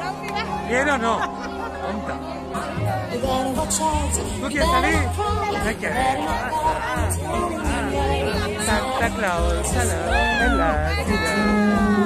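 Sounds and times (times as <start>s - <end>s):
high-pitched voice crying out: 10.1s - 11.6s.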